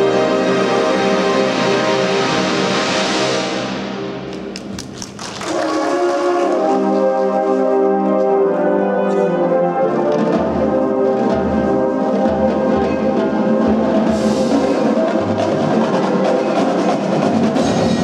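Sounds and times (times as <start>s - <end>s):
marching band brass chords: 0.0s - 18.0s
sharp percussion taps: 4.3s - 5.4s.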